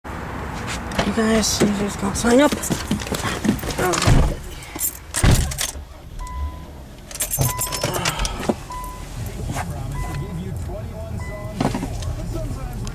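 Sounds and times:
car engine starting and idling: 0.9 - 12.9
dashboard warning chime beeping: 6.1 - 12.4.

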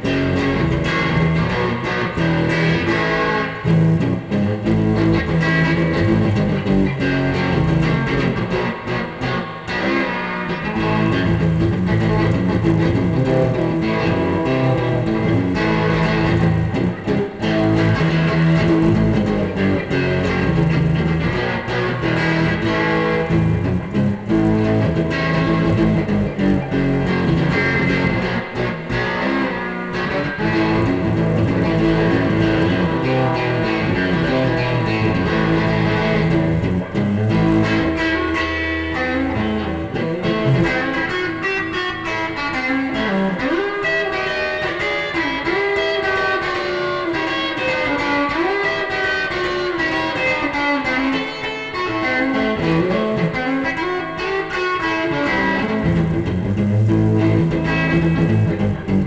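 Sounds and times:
electric guitar playing: 0.0 - 59.0.

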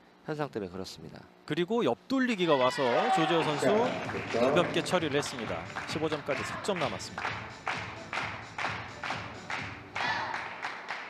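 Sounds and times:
rhythmic clapping in hall: 3.3 - 11.0.

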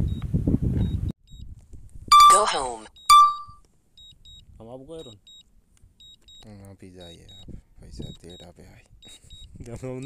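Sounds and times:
wind buffeting microphone: 0.0 - 2.1, 9.4 - 10.0
short high-pitched beeps: 2.1 - 4.4, 5.0 - 10.0.

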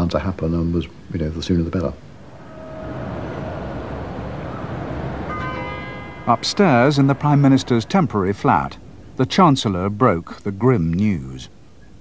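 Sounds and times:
steady background noise: 0.0 - 12.0
bell ringing: 2.3 - 8.7.

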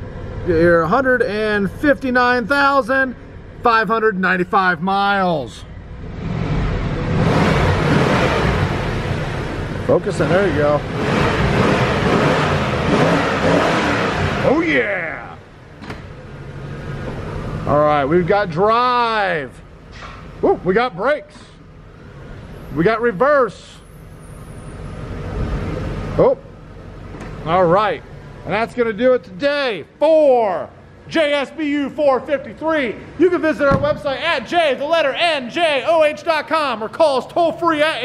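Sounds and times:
car engine rumble: 0.0 - 38.0
car engine revving in cabin: 6.0 - 14.7.

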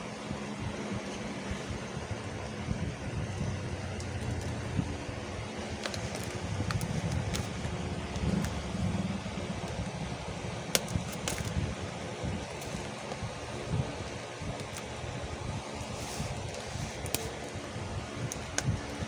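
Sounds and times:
paper parcel rustling: 5.5 - 9.0.

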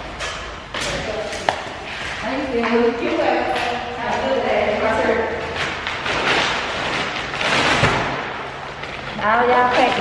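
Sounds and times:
plastic sack rustling: 5.3 - 10.0.

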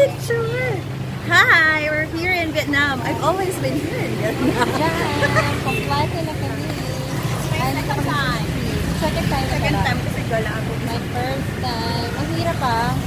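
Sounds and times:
street traffic rumble: 0.0 - 13.0
women talking: 0.0 - 13.0.

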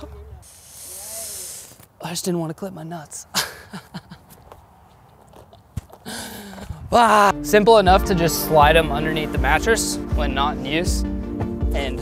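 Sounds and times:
man sighing: 6.0 - 6.9.

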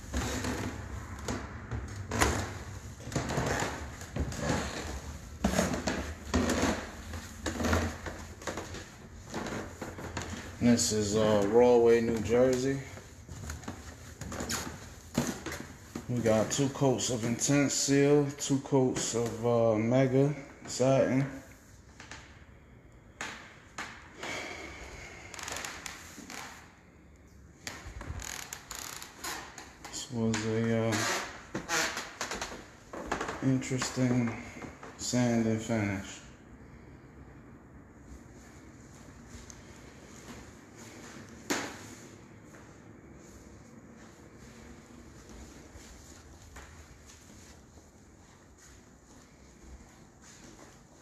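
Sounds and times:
footsteps on hardwood floor: 0.0 - 17.5, 38.9 - 51.0.

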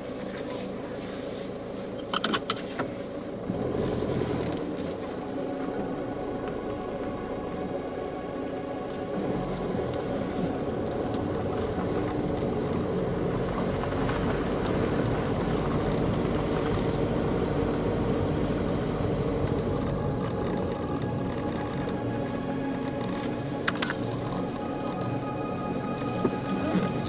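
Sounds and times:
car engine and tyre rumble: 0.0 - 27.0.

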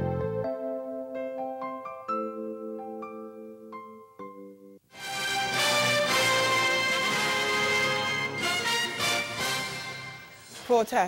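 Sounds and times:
full-band news theme sting: 5.0 - 10.6.

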